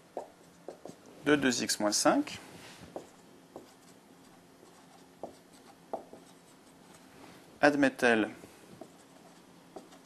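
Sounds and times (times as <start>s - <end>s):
marker writing on whiteboard: 0.0s - 1.0s, 2.8s - 7.1s, 8.7s - 10.0s.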